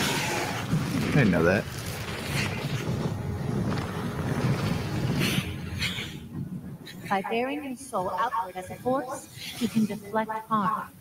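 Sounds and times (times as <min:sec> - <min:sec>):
low rumble with wind-like noise: 0:00.1 - 0:09.3.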